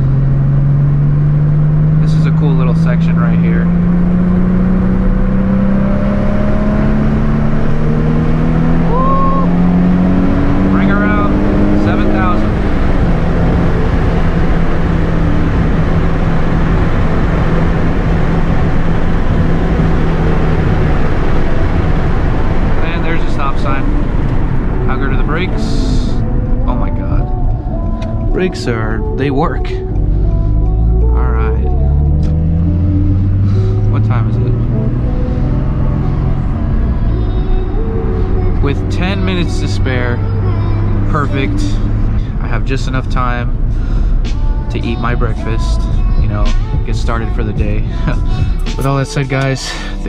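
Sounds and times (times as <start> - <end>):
car engine accelerating: 0.0 - 50.0
road and tyre noise: 0.0 - 50.0.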